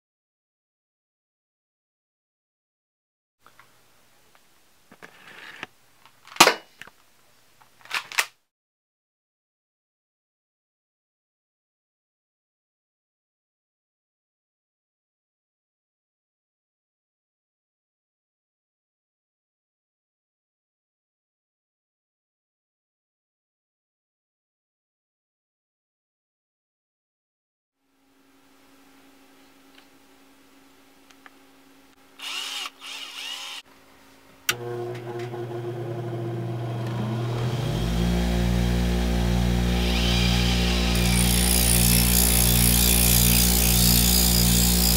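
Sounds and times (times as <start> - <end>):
cordless drill whining: 32.2 - 33.6, 34.5 - 44.9.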